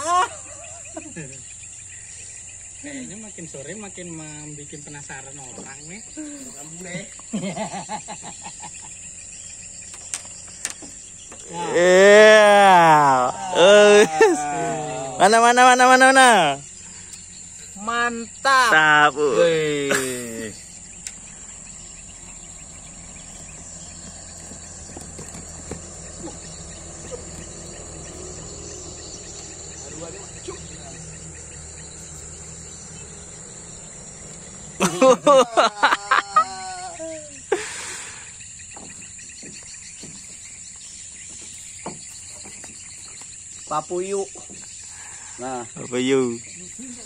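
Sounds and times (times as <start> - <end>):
high-pitched insect chirring: 0.0 - 47.0.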